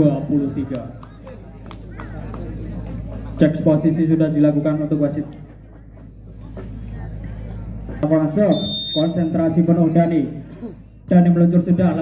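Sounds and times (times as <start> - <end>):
faint background voices: 5.2 - 8.0.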